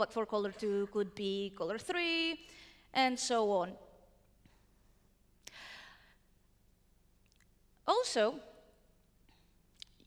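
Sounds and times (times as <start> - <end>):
short breath: 2.5 - 2.9, 4.4 - 6.3.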